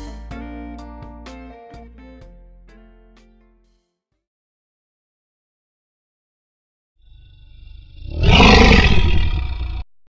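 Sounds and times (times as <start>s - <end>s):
lion roaring: 7.6s - 9.8s.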